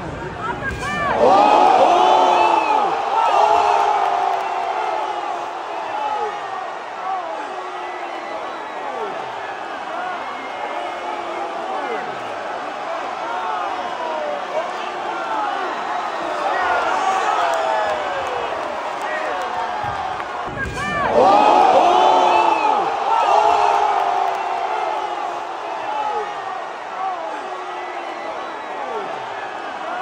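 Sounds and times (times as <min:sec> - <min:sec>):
crowd yelling and cheering: 0:00.0 - 0:30.0.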